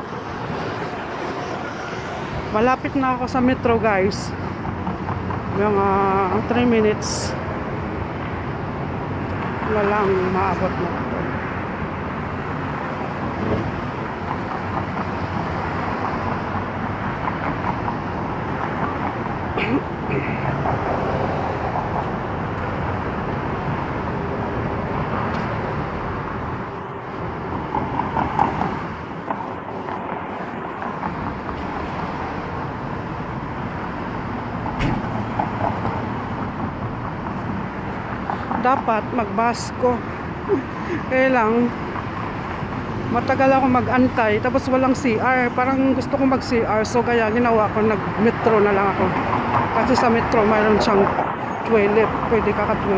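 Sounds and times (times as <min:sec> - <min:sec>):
road traffic hum: 0:00.0 - 0:52.9.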